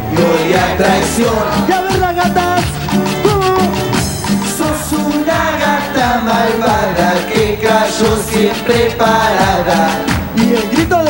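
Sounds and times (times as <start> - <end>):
keyboard melody: 0.0 - 11.0
percussion beat: 0.0 - 11.0.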